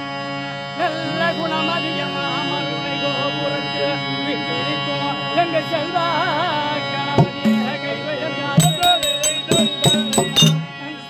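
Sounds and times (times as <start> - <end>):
steady many-toned drone: 0.2 - 11.0
wavering ornamented melody: 8.6 - 11.0.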